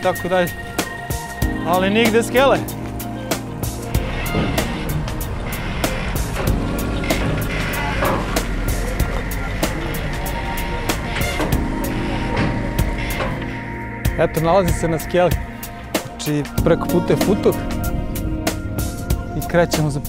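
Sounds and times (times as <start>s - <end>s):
background music with steady beat: 0.0s - 20.0s.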